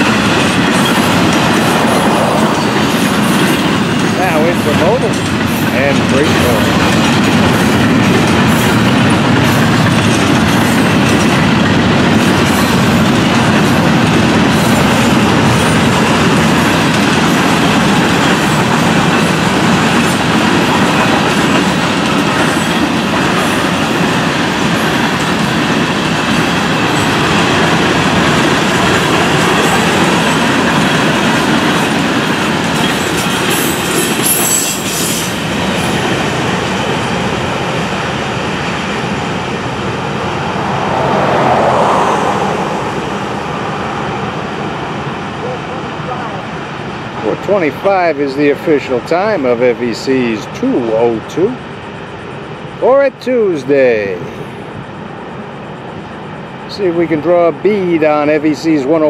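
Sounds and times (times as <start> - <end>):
train wheels rolling on rails: 0.0 - 59.0.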